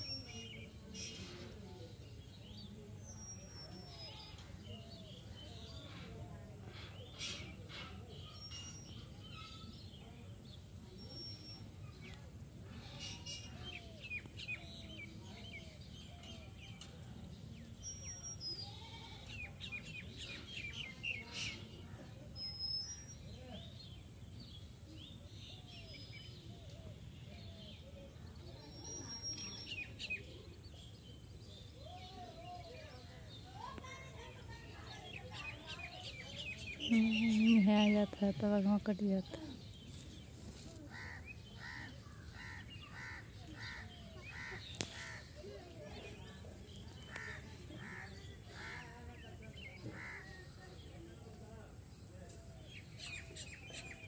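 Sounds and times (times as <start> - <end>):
low outdoor background noise: 0.0 - 54.0
small birds chirping: 0.0 - 54.0.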